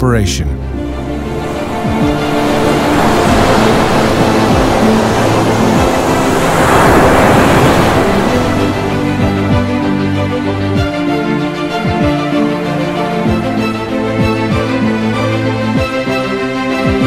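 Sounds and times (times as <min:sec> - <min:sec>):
music with long held notes: 0:00.0 - 0:17.0
surf breaking on rocks: 0:01.0 - 0:10.6.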